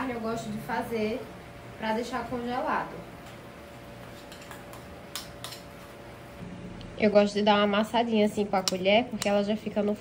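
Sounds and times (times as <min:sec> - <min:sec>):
metal spoon tapping steel bowl: 0:04.3 - 0:05.7.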